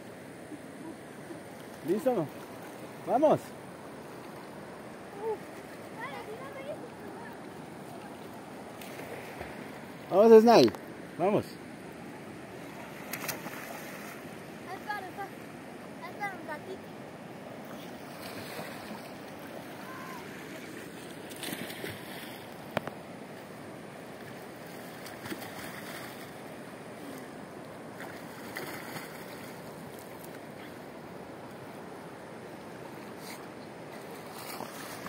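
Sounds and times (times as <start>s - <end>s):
river water rushing: 0.0s - 35.0s
swimming splashes: 12.6s - 14.3s, 17.6s - 22.6s, 24.6s - 27.3s, 28.0s - 30.8s.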